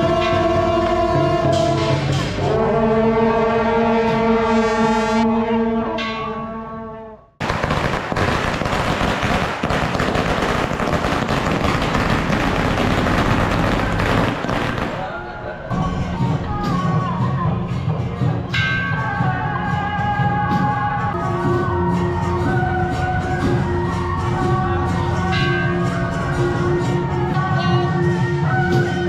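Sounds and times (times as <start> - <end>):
dense crackling din: 7.4 - 15.7.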